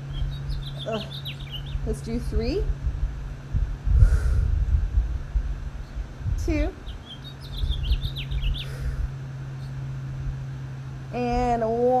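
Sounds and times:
bird chirping: 0:00.0 - 0:02.2, 0:06.8 - 0:09.8
steady low hum: 0:00.0 - 0:12.0.

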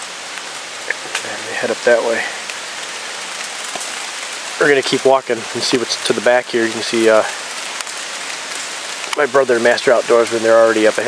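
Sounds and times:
stream flowing: 0:00.0 - 0:11.0.

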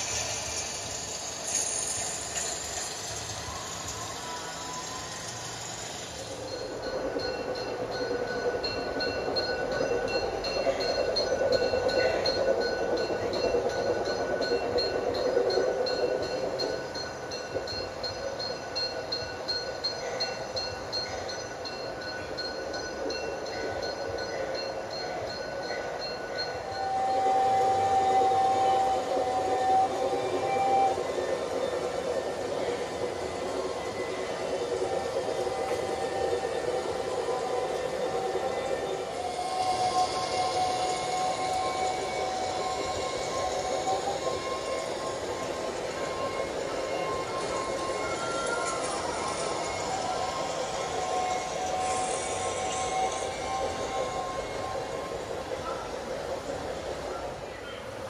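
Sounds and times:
model train running on rails: 0:00.0 - 0:58.0.

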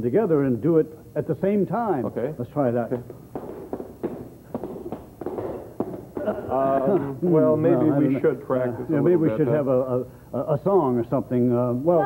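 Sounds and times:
shoes and cane tapping hard floor: 0:02.9 - 0:06.6.

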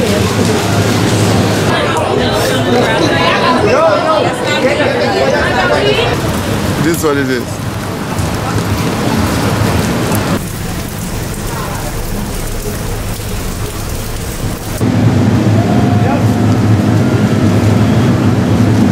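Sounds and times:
steady rain: 0:00.0 - 0:03.6, 0:05.0 - 0:18.9
wet city street noise: 0:00.0 - 0:18.9
deep rumble: 0:06.0 - 0:18.9.

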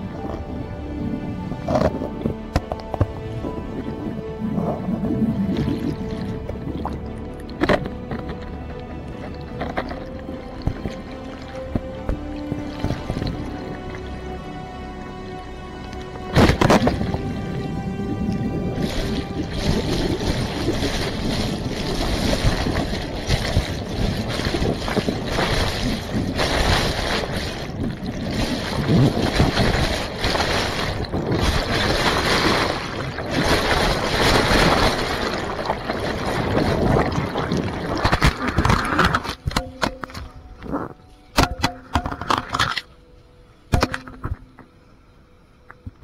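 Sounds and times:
muffled underwater river rush: 0:00.0 - 0:40.7.

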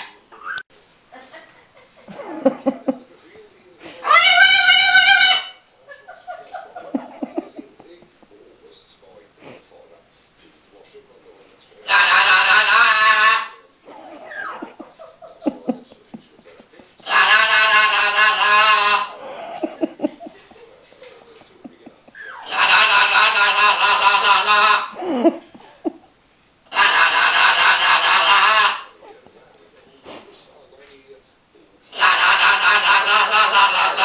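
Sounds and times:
macaw squawking: 0:04.0 - 0:05.6, 0:11.8 - 0:14.8, 0:17.0 - 0:19.3, 0:22.1 - 0:25.0, 0:26.7 - 0:29.2, 0:31.9 - 0:34.0.

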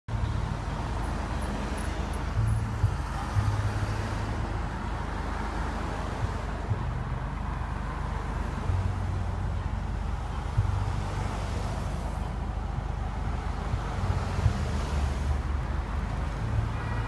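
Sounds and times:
cars driving past: 0:00.1 - 0:17.0.

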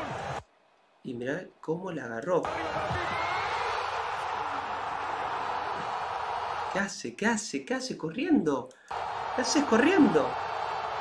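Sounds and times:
stadium crowd cheering: 0:00.0 - 0:01.5, 0:02.4 - 0:07.0, 0:08.9 - 0:11.0.

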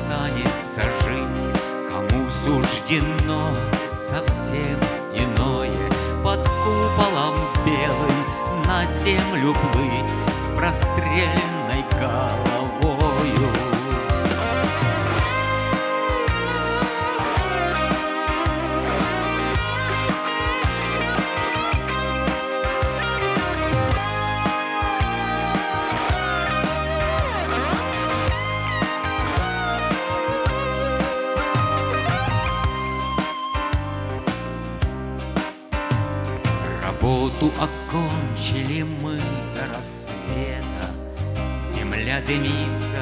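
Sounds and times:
acoustic guitar strumming: 0:00.0 - 0:43.0.

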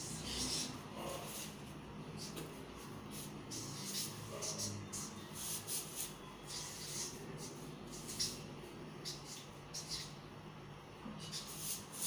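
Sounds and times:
marker pen scratching on chart: 0:00.0 - 0:10.2, 0:11.2 - 0:12.0
faint steady hum: 0:00.0 - 0:12.0.

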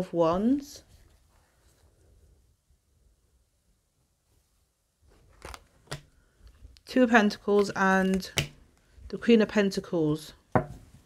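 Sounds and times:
cards snapping: 0:05.3 - 0:06.1.

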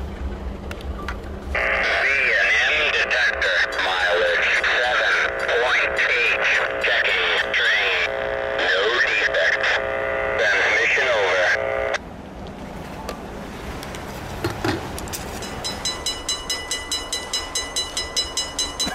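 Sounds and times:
voice over two-way radio: 0:01.6 - 0:12.0.

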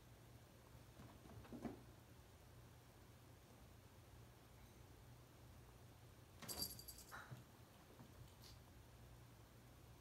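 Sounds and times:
small jingle bell rattling: 0:06.4 - 0:07.3.

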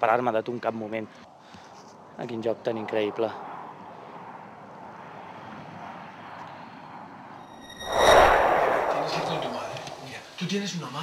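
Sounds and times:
rushing whoosh: 0:07.5 - 0:10.4.

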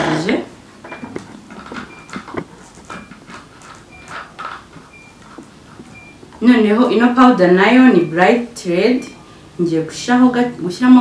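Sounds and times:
light taps and rustles: 0:00.8 - 0:06.0.

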